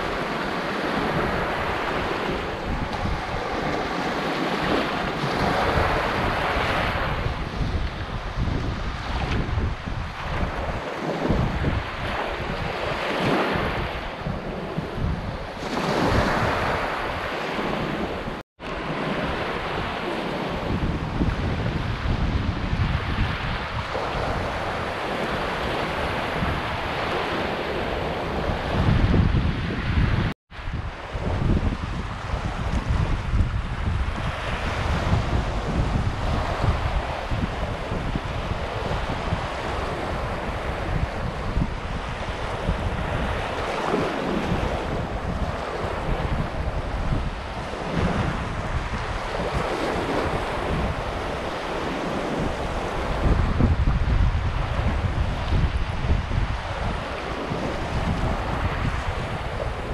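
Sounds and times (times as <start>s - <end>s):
waves breaking on sandy beach: 0.0s - 59.9s
wind buffeting microphone: 0.0s - 59.9s.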